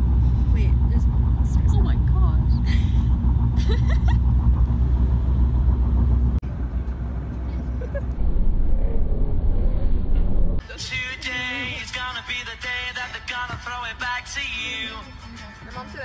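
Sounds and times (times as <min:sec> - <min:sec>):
van cabin road rumble: 0:00.0 - 0:16.0
music with singing: 0:10.6 - 0:16.0.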